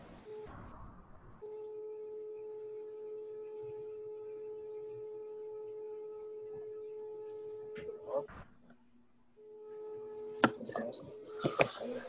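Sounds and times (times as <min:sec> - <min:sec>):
steady electronic tone: 0:00.0 - 0:08.6, 0:09.3 - 0:11.4.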